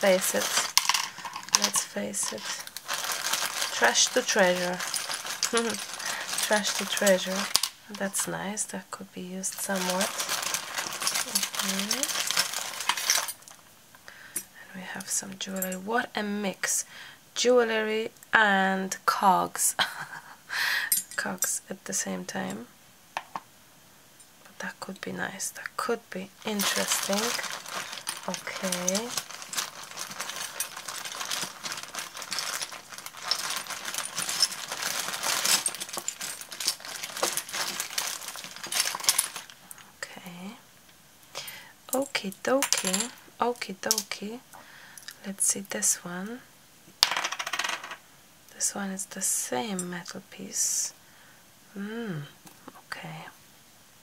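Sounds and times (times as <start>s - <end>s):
small metal pieces clinking: 0.0s - 8.2s, 9.5s - 13.6s, 26.5s - 39.8s
plastic bag crinkling: 0.0s - 8.3s, 9.5s - 13.6s, 26.4s - 39.8s.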